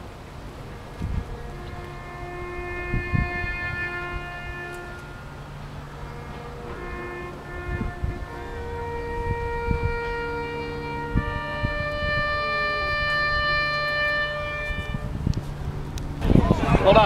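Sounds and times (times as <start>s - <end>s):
low rumble of wind: 0.0s - 17.0s
slow ceremonial wind music: 0.0s - 17.0s.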